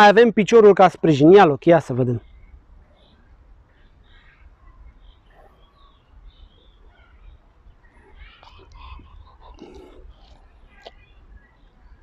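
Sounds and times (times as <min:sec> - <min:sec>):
distant bird chirps: 0:00.7 - 0:12.0.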